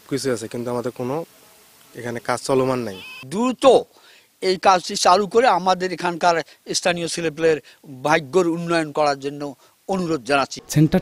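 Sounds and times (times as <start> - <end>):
man speaking: 0.0 - 1.3, 1.9 - 11.0.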